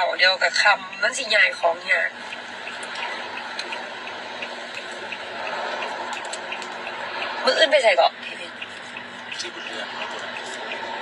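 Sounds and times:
rushing noise in car cabin: 0.0s - 11.0s
faint regular ticking: 0.4s - 11.0s.

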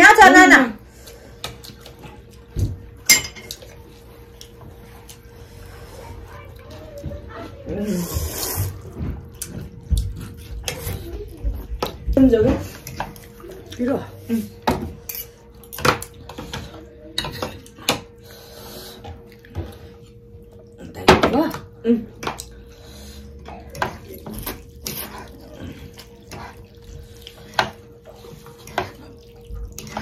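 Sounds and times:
cutlery clinking against bowls: 3.0s - 3.8s, 14.6s - 18.1s
noodles being slurped: 7.9s - 9.4s.

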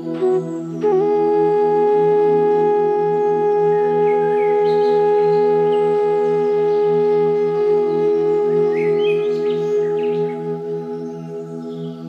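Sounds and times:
ambient meditation music drone: 0.0s - 12.0s
birds chirping: 0.0s - 12.0s.

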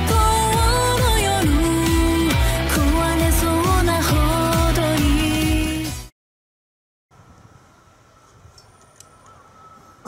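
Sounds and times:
faint steady high tone: 7.2s - 10.0s.

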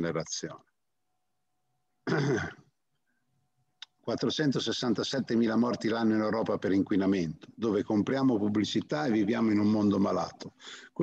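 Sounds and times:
man clearing his throat: 2.0s - 2.7s.

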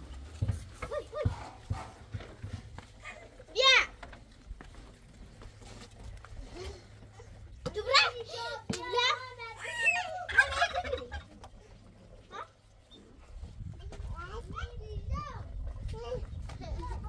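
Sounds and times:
child talking and laughing: 0.5s - 4.2s, 6.3s - 17.0s.

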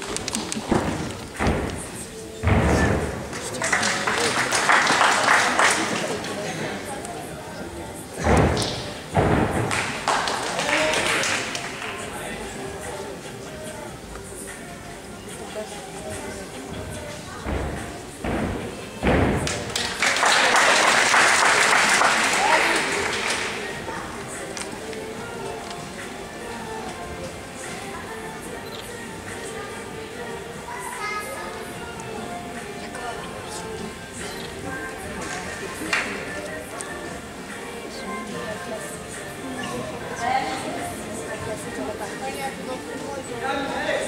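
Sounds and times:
spectators cheering and clapping: 19.4s - 23.7s.

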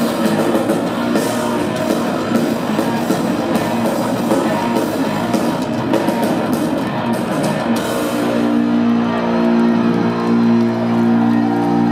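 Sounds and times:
electric guitars and bass chord: 0.0s - 11.9s.

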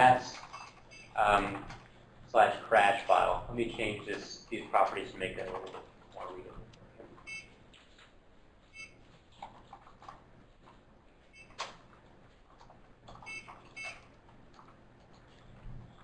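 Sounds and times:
faint high beeps: 7.3s - 7.5s.

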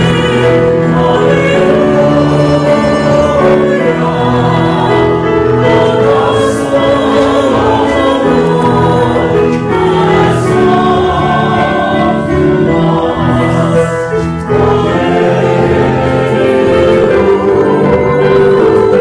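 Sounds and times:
church choir singing: 0.0s - 19.0s
keyboard accompaniment: 0.0s - 19.0s.

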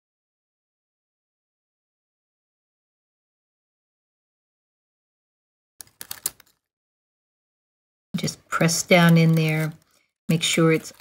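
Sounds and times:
paper crackling and clicking: 5.8s - 6.7s, 8.2s - 11.0s.

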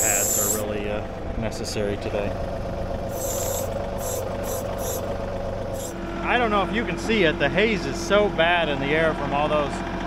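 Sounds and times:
hydraulics hissing: 0.0s - 0.7s, 3.0s - 6.0s
diesel tractor running: 0.0s - 10.0s.

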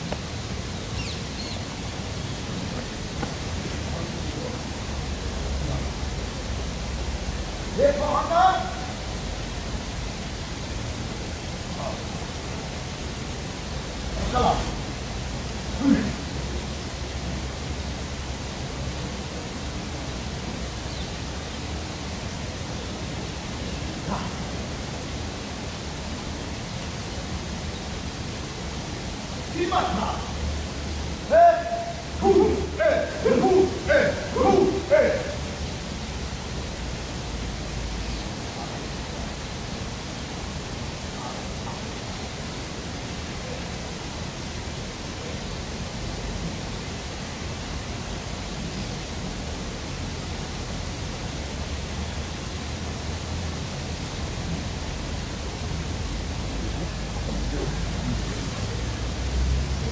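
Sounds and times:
rumbling background noise: 0.0s - 59.9s
shouted vocal calls: 31.2s - 35.8s.

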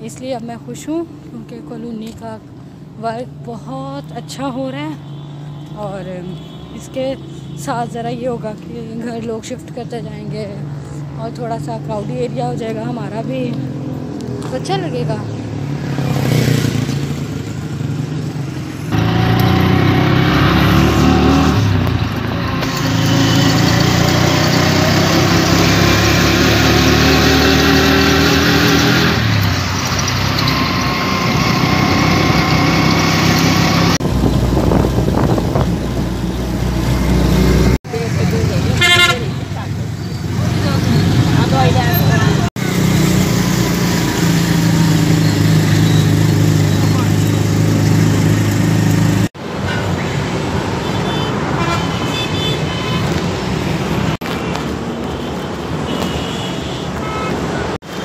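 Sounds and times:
motor rickshaw engine: 0.0s - 55.8s
street traffic: 0.0s - 58.0s
horn tooting: 38.7s - 39.6s, 50.8s - 53.2s, 55.2s - 57.8s.

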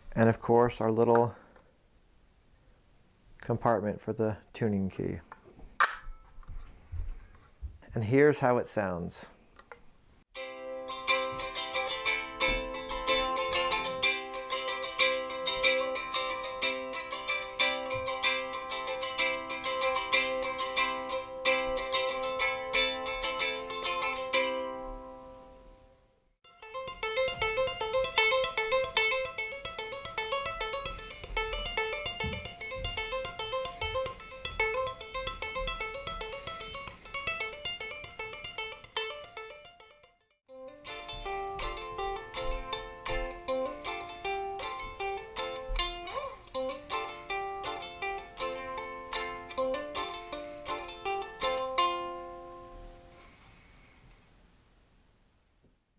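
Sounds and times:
ukulele picked notes: 10.4s - 25.9s, 26.5s - 53.3s
ukulele strummed chords: 10.4s - 25.9s, 26.5s - 53.2s.

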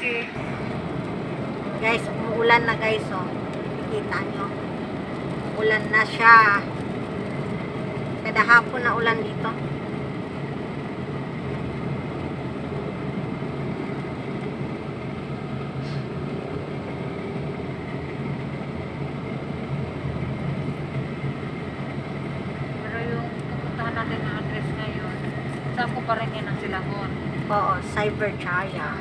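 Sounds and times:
voices: 0.0s - 0.6s, 1.8s - 4.7s, 5.5s - 6.8s, 8.2s - 9.7s, 22.8s - 29.0s
road and engine noise in car: 0.0s - 29.0s.

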